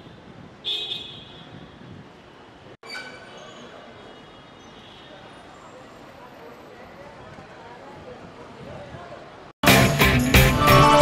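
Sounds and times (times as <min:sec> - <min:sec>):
background traffic noise: 0:00.0 - 0:09.6
vehicle horn toot: 0:00.6 - 0:01.6.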